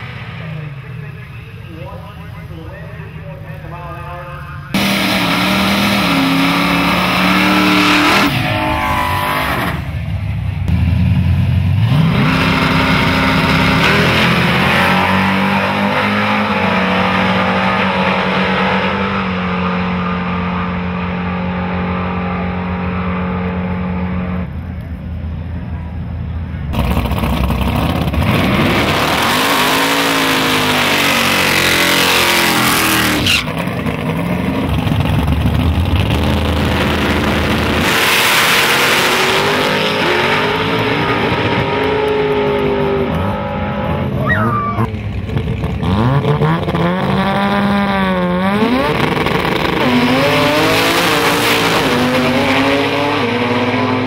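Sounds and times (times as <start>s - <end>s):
racing car engines at full throttle: 0.0s - 54.0s
car engine revving: 4.1s - 24.5s, 26.8s - 54.0s.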